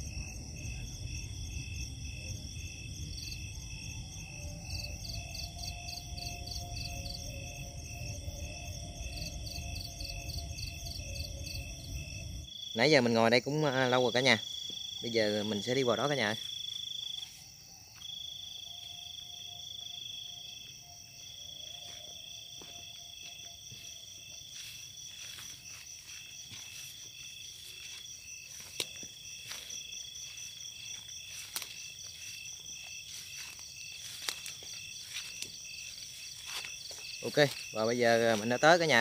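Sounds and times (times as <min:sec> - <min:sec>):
insect trills: 0:00.0 - 0:39.0
pulsing insect chirp: 0:00.0 - 0:39.0
footsteps through dry grass: 0:15.6 - 0:19.2, 0:20.6 - 0:39.0.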